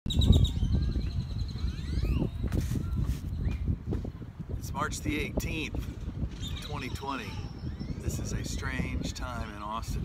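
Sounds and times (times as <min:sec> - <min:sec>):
birds chirping: 0:00.1 - 0:03.8, 0:06.1 - 0:10.0
wind rumble on microphone: 0:00.1 - 0:10.0.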